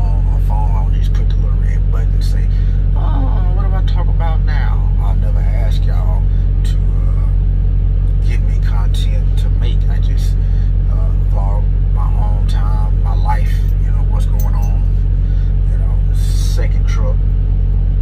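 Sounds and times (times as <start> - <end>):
truck engine idling: 0.0 - 18.0.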